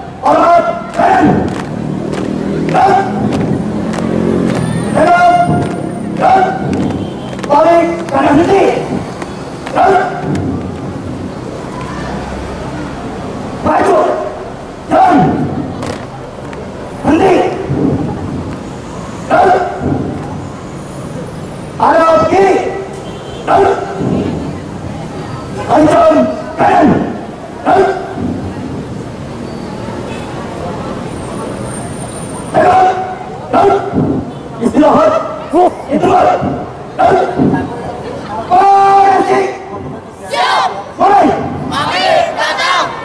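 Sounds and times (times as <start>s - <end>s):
marching feet on paving: 0.9s - 11.0s.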